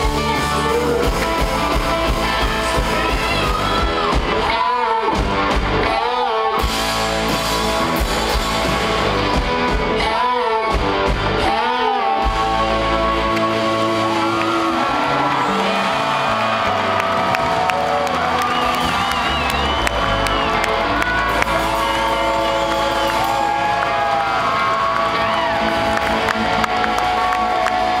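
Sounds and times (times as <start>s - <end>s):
live rock band: 0.0s - 28.0s
crowd cheering: 11.4s - 28.0s.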